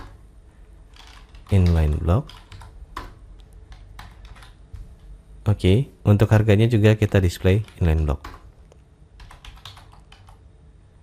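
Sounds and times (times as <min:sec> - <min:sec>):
computer keyboard keystrokes: 0:00.9 - 0:04.6, 0:07.0 - 0:10.4.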